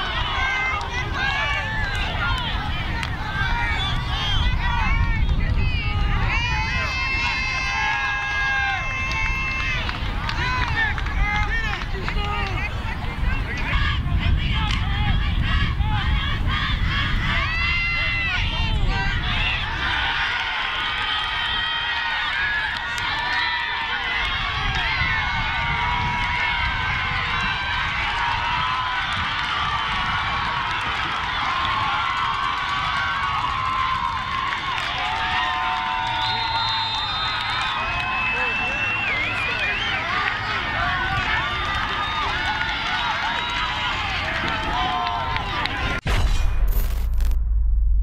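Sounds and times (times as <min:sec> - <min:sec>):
crowd shouting and cheering: 0:00.0 - 0:46.2.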